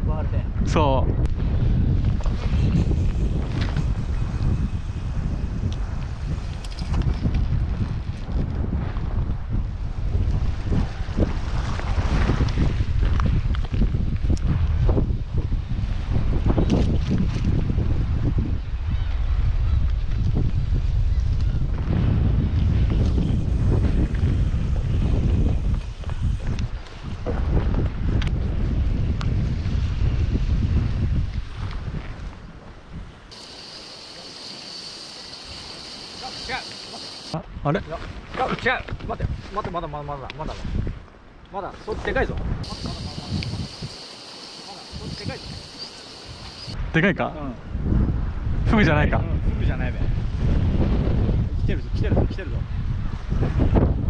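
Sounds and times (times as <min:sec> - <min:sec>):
wind buffeting microphone: 0:00.0 - 0:54.0
sea wash: 0:33.3 - 0:37.4, 0:42.6 - 0:46.8
steady high hiss: 0:33.3 - 0:37.4, 0:42.6 - 0:46.8.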